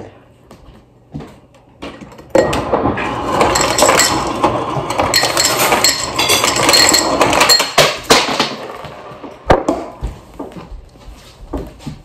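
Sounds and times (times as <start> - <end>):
ice cubes clattering into a glass: 3.2 - 8.6.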